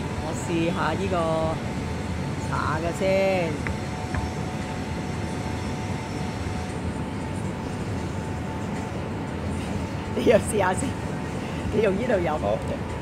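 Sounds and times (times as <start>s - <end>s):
faint constant hum: 0.0s - 13.0s.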